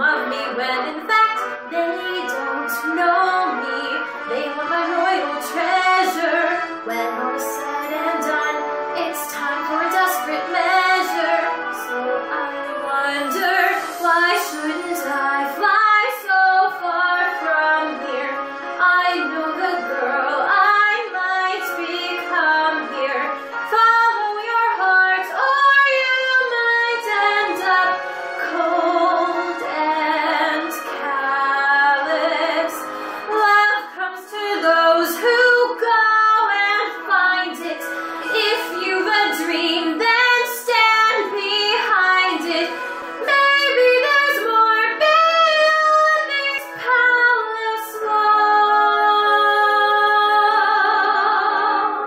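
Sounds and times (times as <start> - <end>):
woman singing show tune: 0.0 - 52.0.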